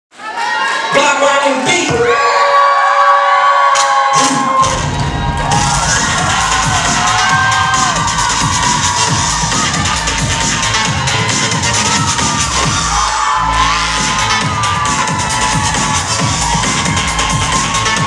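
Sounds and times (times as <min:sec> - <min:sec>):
audience cheering: 0:00.2 - 0:18.0
children shouting: 0:02.0 - 0:18.0
bass-heavy dance beat: 0:04.2 - 0:18.0.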